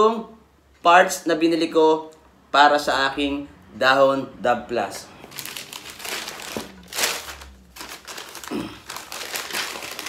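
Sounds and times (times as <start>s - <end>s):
newspaper crinkling and rustling: 5.3s - 10.0s.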